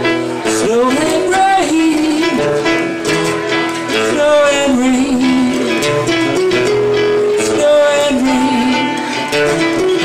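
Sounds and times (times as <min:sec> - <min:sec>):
acoustic and electric guitars: 0:00.0 - 0:10.0
gliding melody line: 0:03.6 - 0:10.0.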